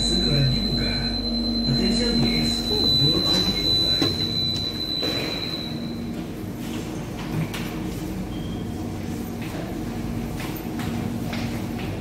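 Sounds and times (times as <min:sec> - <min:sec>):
low train rumble: 0:00.0 - 0:12.0.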